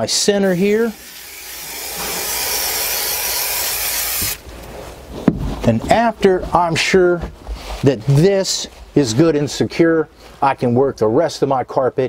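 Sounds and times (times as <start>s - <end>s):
aerosol can spraying hiss: 0.5s - 4.4s.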